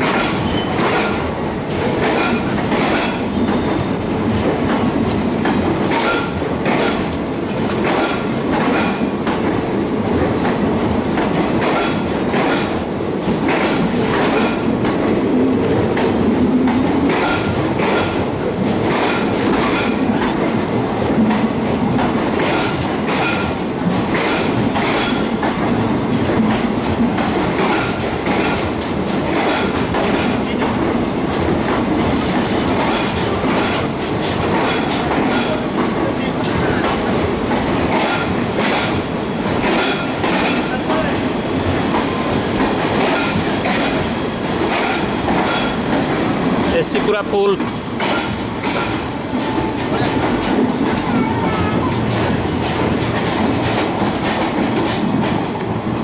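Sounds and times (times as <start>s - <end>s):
train rumble: 0.0s - 56.0s
train wheels clickety-clack: 0.0s - 56.0s.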